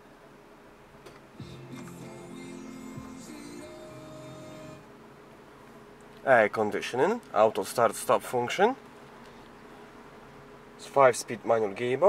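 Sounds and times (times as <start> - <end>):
low steady hum: 0.0 - 12.0
car radio playing music: 1.4 - 4.9.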